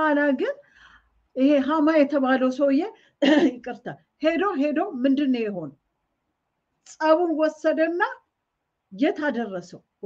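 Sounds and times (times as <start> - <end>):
woman speaking: 0.0 - 0.6, 1.4 - 5.8, 6.8 - 8.3, 8.9 - 10.0.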